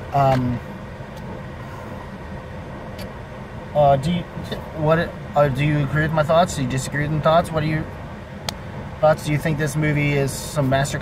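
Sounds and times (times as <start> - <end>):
car engine idling: 0.0 - 11.0.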